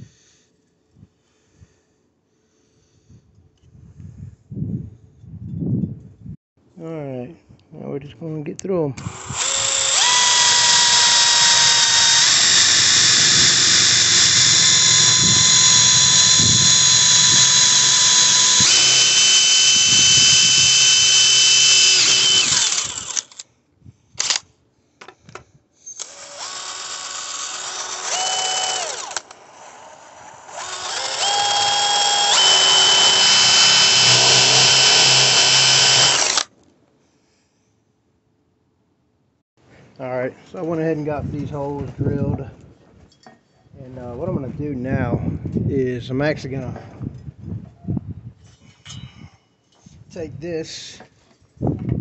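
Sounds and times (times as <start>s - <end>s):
power drill boring through metal: 9.0s - 23.4s, 25.9s - 36.5s.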